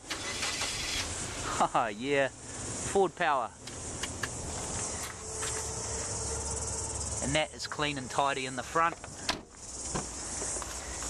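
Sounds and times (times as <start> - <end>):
car engine starting and running: 0.0 - 11.0.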